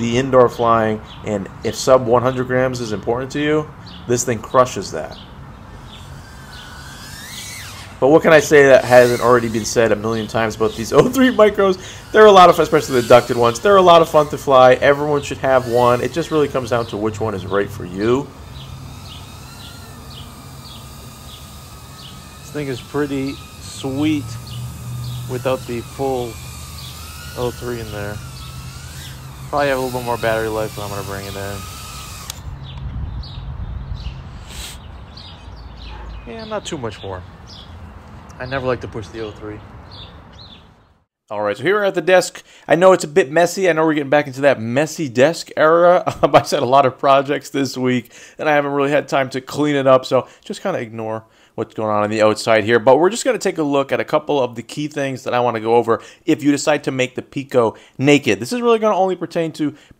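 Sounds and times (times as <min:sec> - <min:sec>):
quadcopter motor and propeller whine: 0:03.7 - 0:33.4, 0:34.0 - 0:34.8, 0:46.1 - 0:46.3
small bird chirping: 0:03.8 - 0:41.1
sharp click: 0:32.2 - 0:32.9
brief hiss: 0:34.3 - 0:34.9.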